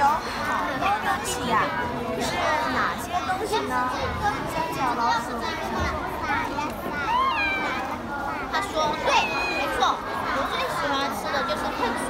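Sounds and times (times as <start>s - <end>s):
children talking over one another: 0.0s - 12.0s.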